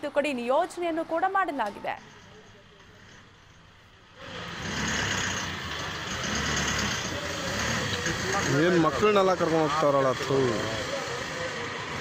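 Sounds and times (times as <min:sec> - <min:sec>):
minibus engine rumbling: 0:01.9 - 0:12.0.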